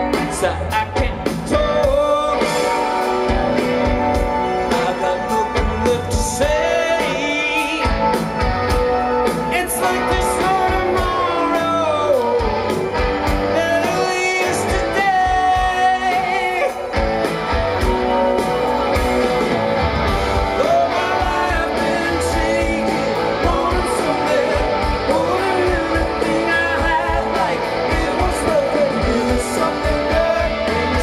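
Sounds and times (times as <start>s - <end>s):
person singing: 0.0s - 8.3s, 9.2s - 17.0s, 20.4s - 31.0s
bass guitar: 0.0s - 31.0s
drums: 0.0s - 31.0s
electric guitars: 0.0s - 31.0s.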